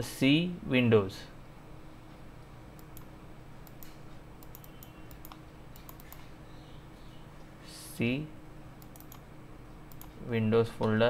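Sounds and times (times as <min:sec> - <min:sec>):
computer mouse clicks: 0:02.8 - 0:06.3, 0:08.8 - 0:09.2, 0:09.9 - 0:10.2.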